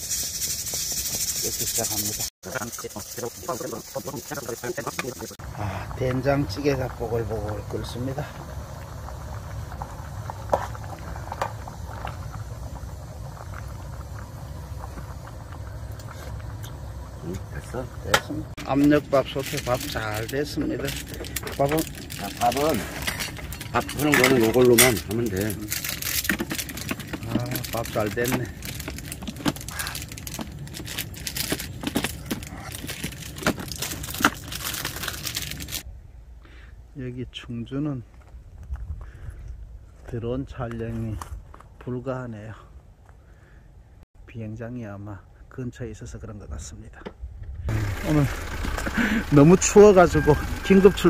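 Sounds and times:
stew bubbling in a metal pot: 0:02.5 - 0:30.8
steady low rumble: 0:02.6 - 0:41.8, 0:45.2 - 0:51.0.

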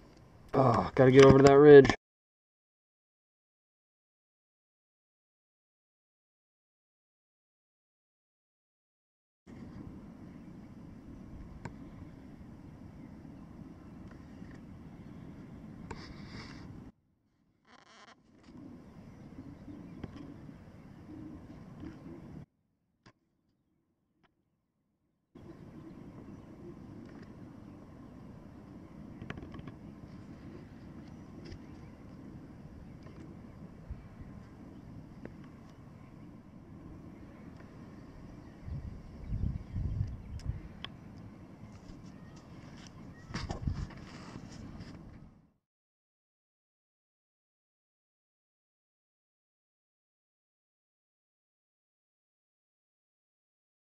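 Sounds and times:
wind rumbling on microphone: 0:09.5 - 0:16.9, 0:25.4 - 0:45.4.

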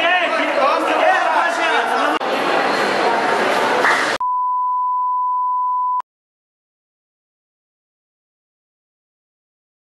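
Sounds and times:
crowd chatter: 0:00.0 - 0:04.2
electronic beep tone: 0:04.2 - 0:06.0.

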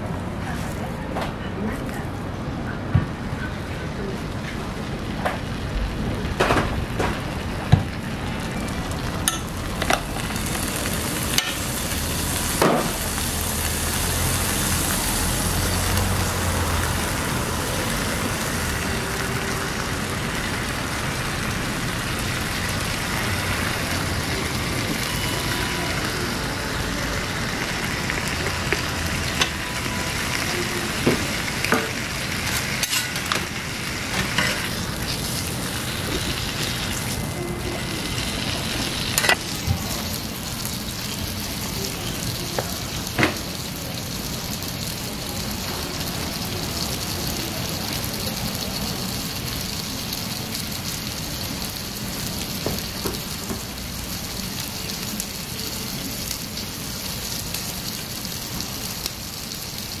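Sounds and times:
food sizzling on a griddle: 0:03.8 - 1:00.0.

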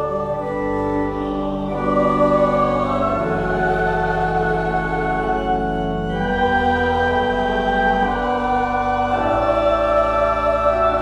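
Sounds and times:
church choir singing: 0:00.0 - 0:11.0
pipe organ: 0:00.0 - 0:11.0.

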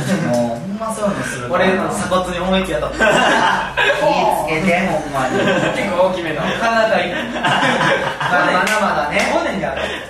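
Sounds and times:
young men talking: 0:00.0 - 0:10.0
young men chuckling: 0:02.9 - 0:04.4, 0:05.1 - 0:08.7.

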